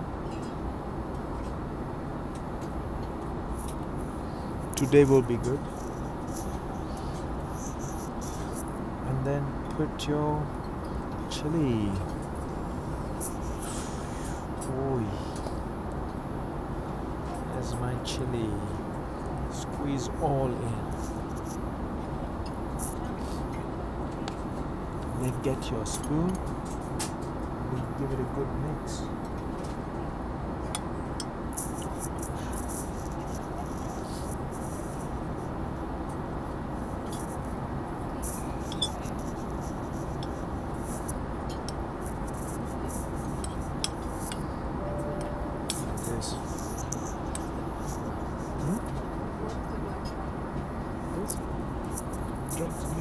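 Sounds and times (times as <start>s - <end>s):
airliner cabin noise: 0.0s - 53.0s
spoon scraping ceramic bowl: 38.3s - 40.4s.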